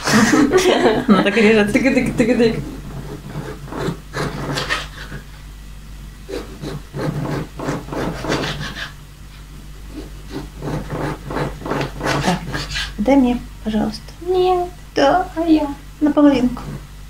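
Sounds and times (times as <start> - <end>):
knife sawing through sausage: 2.6 - 5.2, 6.3 - 9.0, 9.9 - 13.0.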